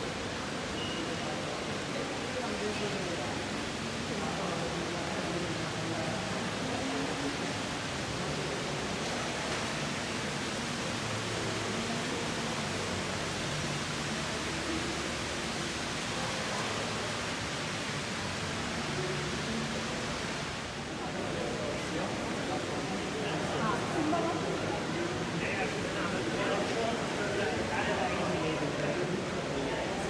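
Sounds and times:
faint indistinct voices: 0.0 - 30.0
mall ambience hiss: 0.0 - 30.0.

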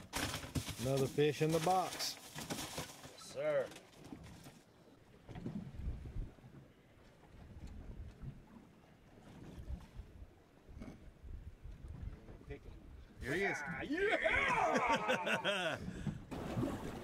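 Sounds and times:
water moving against hull: 0.7 - 17.0.

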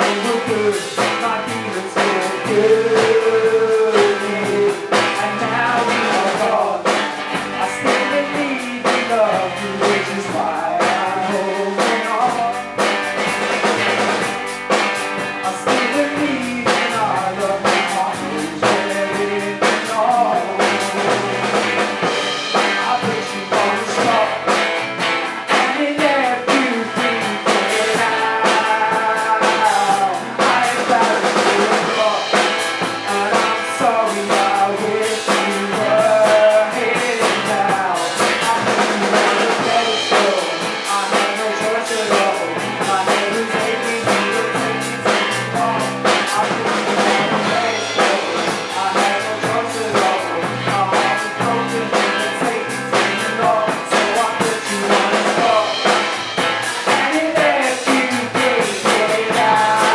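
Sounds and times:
men singing: 0.0 - 14.3, 15.2 - 59.9
drum kit: 0.0 - 59.9
electric bass: 0.0 - 59.9.

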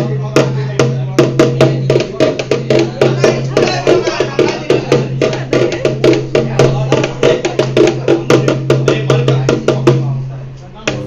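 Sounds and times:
hand drum struck with stick: 0.0 - 10.2.

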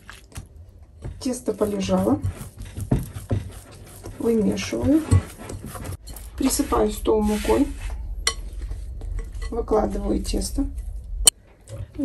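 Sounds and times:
hand kneading dough: 0.0 - 10.2.

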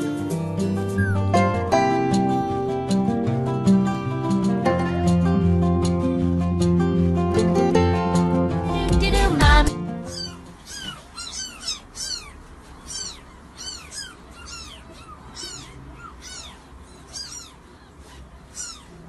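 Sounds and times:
kittens mewing: 1.0 - 1.3, 10.0 - 19.0.

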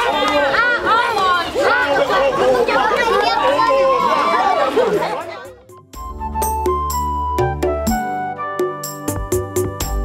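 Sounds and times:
crowd chattering: 0.0 - 5.9.

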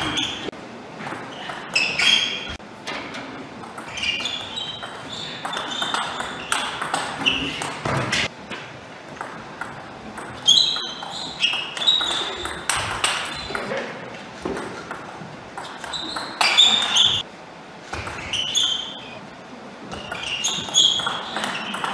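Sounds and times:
shoes squeaking on floor: 0.0 - 0.5, 1.3 - 2.6, 3.9 - 8.3, 10.4 - 13.7, 15.6 - 17.2, 18.0 - 19.2, 19.9 - 21.9
table tennis ball clicking: 20.1 - 21.9.

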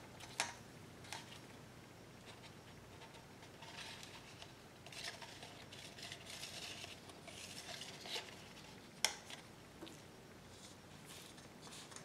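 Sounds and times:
stir stick scraping plastic cups: 2.3 - 12.0.

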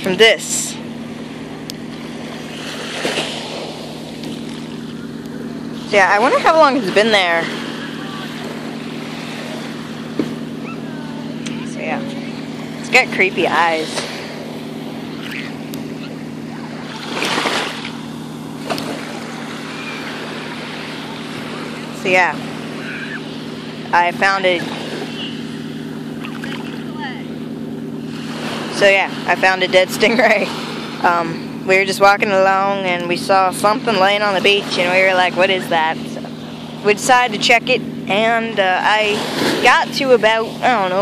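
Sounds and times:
wave washing up sand: 0.0 - 27.2, 28.0 - 31.1, 38.2 - 41.0
low motor drone: 0.0 - 41.0
low steady hum: 0.0 - 41.0
surf rushing: 0.0 - 41.0
wind: 0.0 - 41.0.

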